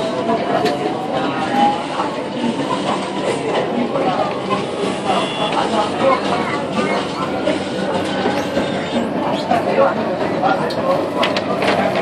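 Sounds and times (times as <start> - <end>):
metro car running noise: 0.0 - 12.0.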